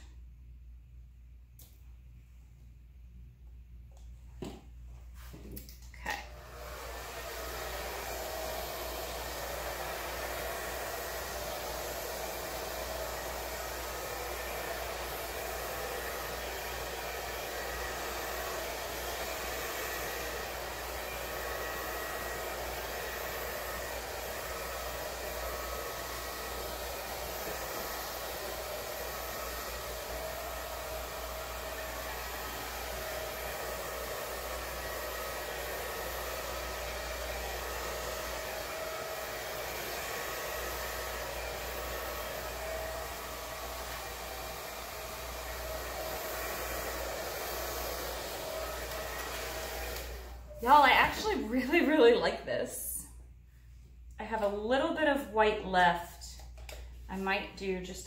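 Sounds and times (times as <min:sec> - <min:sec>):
hair dryer running: 0:05.2 - 0:53.1, 0:54.2 - 0:58.0.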